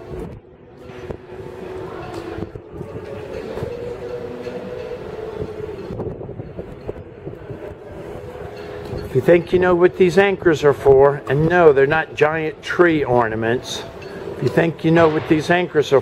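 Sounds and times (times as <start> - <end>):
steady mechanical hum: 0.0 - 16.0.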